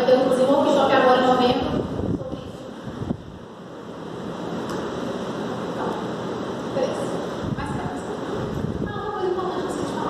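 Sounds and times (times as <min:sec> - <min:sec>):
room hiss and rumble: 0:00.0 - 0:10.0.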